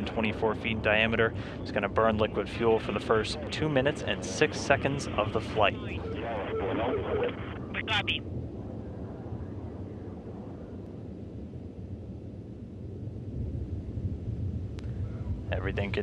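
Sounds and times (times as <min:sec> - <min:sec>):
rocket engines rumbling: 0:00.0 - 0:13.2, 0:13.9 - 0:16.0.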